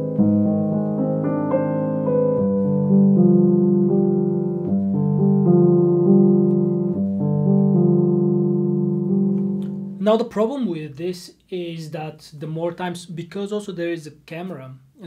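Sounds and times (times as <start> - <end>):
grand piano chords: 0.0 - 10.2.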